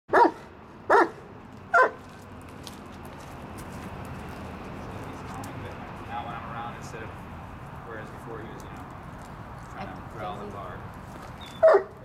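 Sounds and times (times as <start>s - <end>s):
dog barking: 0.1s - 2.0s, 11.5s - 12.0s.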